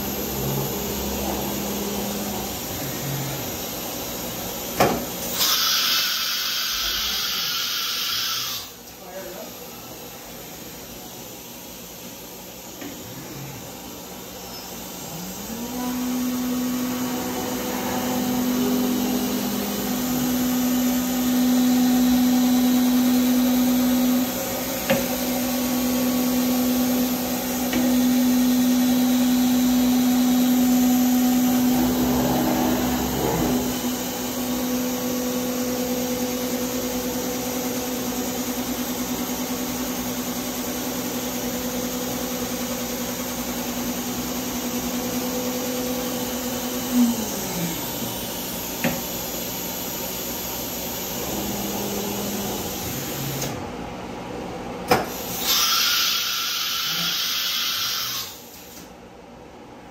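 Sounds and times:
cnc router spindle motor tone: 0.0s - 3.8s, 5.3s - 8.8s, 12.8s - 53.6s, 55.3s - 58.8s.

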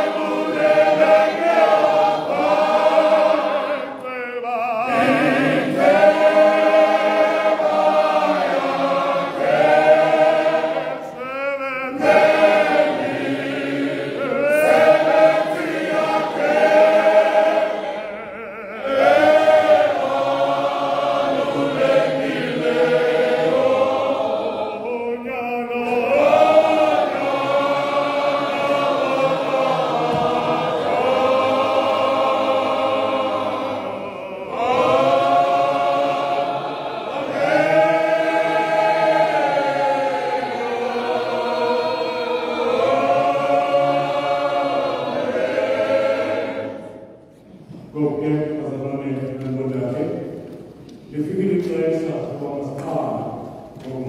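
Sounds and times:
men singing a hymn: 0.0s - 47.0s.

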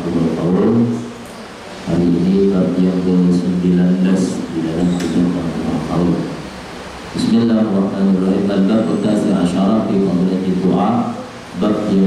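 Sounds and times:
man speaking over a microphone: 0.0s - 1.2s, 1.8s - 6.5s, 7.2s - 12.0s
low background rumble and hiss: 0.0s - 12.0s.

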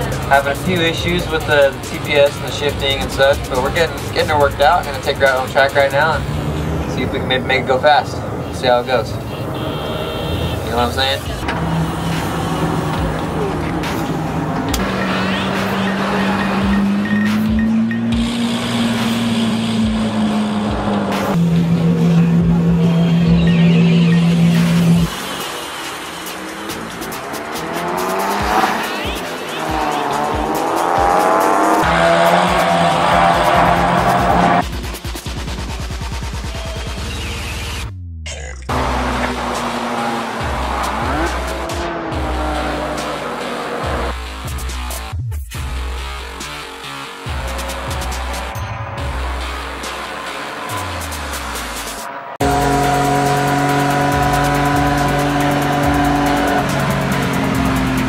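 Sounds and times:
background music: 0.0s - 8.5s, 11.0s - 37.6s, 38.7s - 58.0s
race car engine revving: 0.0s - 37.9s, 38.7s - 58.0s
tyres squealing: 38.7s - 45.0s, 46.3s - 58.0s.

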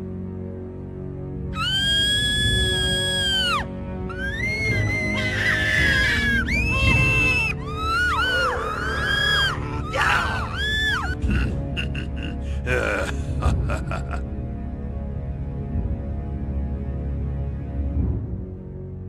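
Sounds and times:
low music score: 0.0s - 19.0s
people screaming and yelling: 1.6s - 11.4s.

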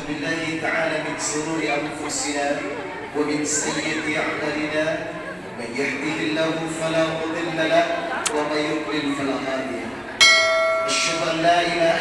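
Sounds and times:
bright bell chime: 10.2s - 11.5s.

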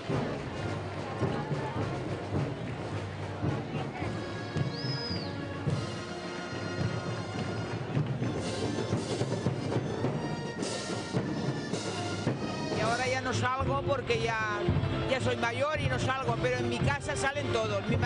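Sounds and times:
heavy drum beats: 0.0s - 18.0s
wind band playing a march: 0.0s - 18.0s.

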